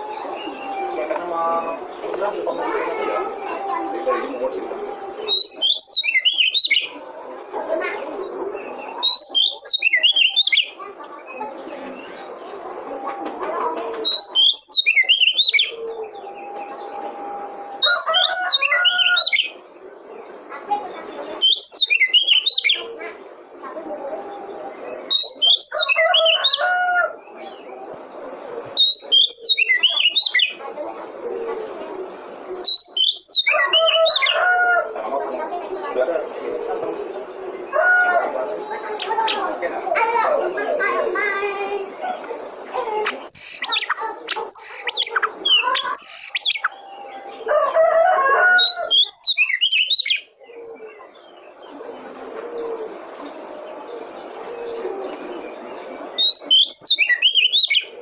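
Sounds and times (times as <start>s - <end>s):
bird singing song phrase: 0.0s - 7.0s, 8.2s - 12.6s, 14.0s - 27.8s, 28.8s - 30.6s, 32.6s - 34.4s, 42.9s - 47.9s, 48.6s - 58.0s.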